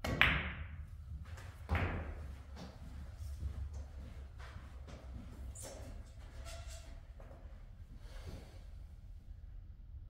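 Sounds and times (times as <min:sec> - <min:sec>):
steady low hum: 0:00.6 - 0:10.0.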